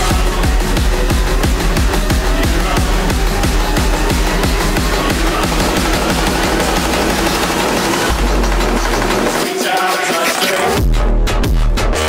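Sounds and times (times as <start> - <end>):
electronic dance music: 0.0 - 10.9.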